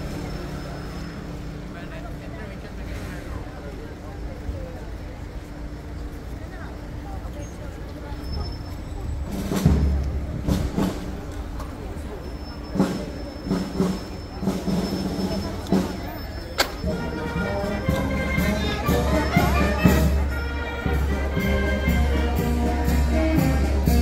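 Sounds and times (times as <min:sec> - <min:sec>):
murmur of crowd voices: 0:00.0 - 0:24.0
band music: 0:09.3 - 0:24.0.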